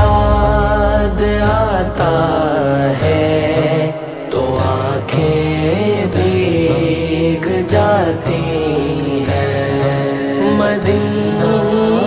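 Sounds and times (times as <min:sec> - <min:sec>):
low sustained drone: 0:00.0 - 0:03.0
layered voices singing long notes: 0:00.0 - 0:12.0.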